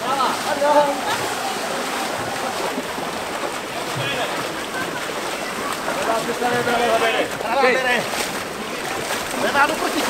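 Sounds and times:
water splashing from paddling: 0.0s - 10.0s.

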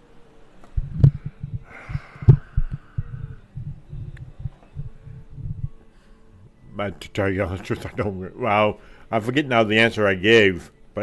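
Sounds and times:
soft exhale hiss: 0.7s - 6.6s, 8.8s - 9.2s
breath thumps on microphone: 0.8s - 4.9s.

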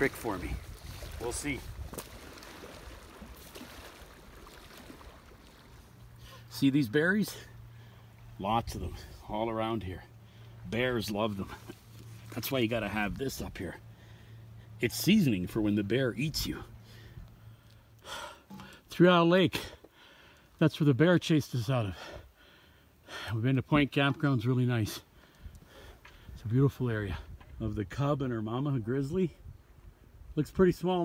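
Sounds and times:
wind rumble on microphone: 0.0s - 2.2s, 29.3s - 30.7s
waves lapping on stony shore: 0.0s - 6.5s
low steady hum: 0.0s - 30.8s
person breathing: 13.9s - 14.8s, 19.8s - 20.6s, 22.0s - 23.4s.

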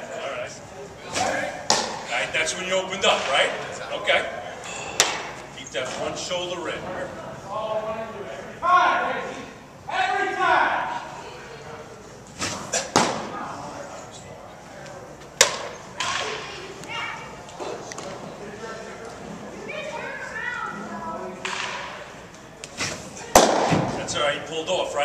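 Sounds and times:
baseballs hitting catcher's mitt: 1.2s - 2.0s, 5.0s - 5.3s, 12.4s - 13.3s, 15.4s - 16.4s, 22.8s - 24.0s.

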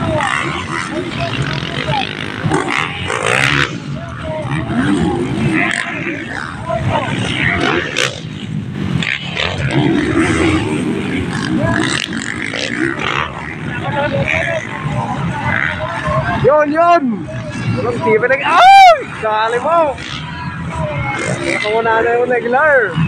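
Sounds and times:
dirt bike engines revving: 0.0s - 23.0s
spectators' voices and shouts: 0.0s - 23.0s.

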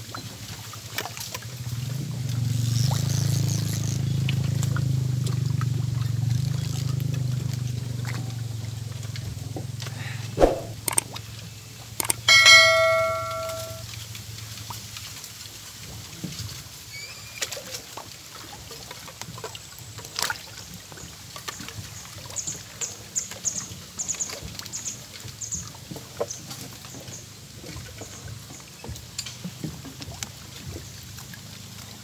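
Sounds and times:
button click: 10.4s - 11.0s
bell ding: 12.0s - 13.8s.

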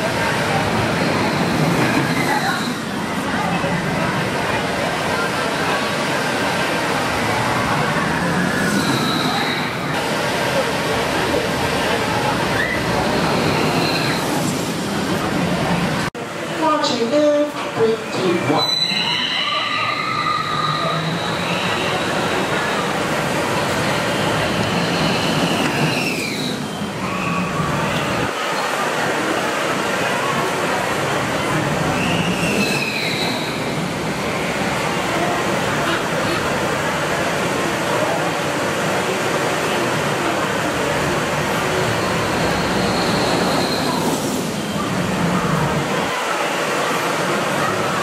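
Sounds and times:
roller coaster train rumbling past: 0.0s - 16.6s, 17.4s - 48.0s.

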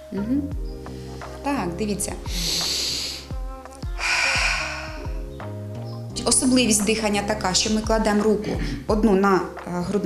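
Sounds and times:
music with thudding beat: 0.2s - 10.0s
woman breathing in deeply: 0.8s - 1.4s, 2.3s - 5.3s.

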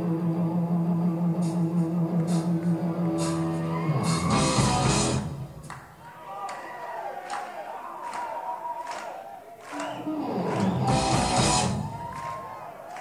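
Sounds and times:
live rock band: 1.2s - 5.8s, 9.7s - 12.5s.

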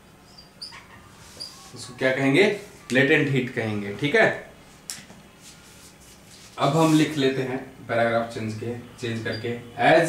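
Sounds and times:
marker squeaking on whiteboard: 0.2s - 3.0s, 9.2s - 9.6s.

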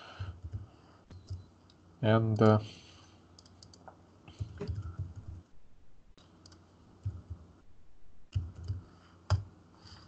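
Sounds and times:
mouse and keyboard clicks: 3.4s - 5.3s.

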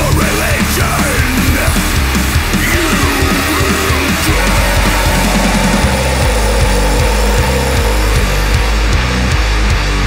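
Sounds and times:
heavy distorted guitars: 0.0s - 10.0s.

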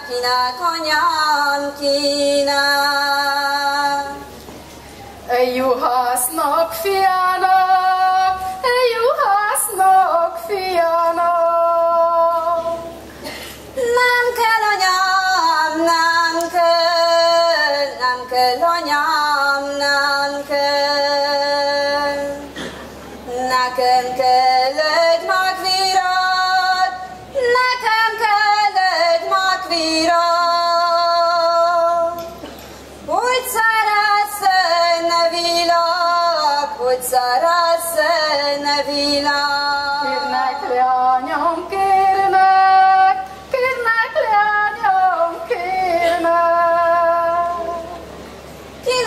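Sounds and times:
woman singing folk song: 0.0s - 4.3s, 5.3s - 32.4s, 33.1s - 48.0s.

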